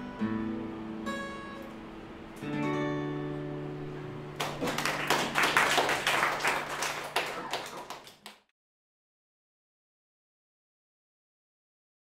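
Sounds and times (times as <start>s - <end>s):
acoustic guitar chord ringing: 0.0s - 4.4s
people clapping: 4.3s - 8.5s.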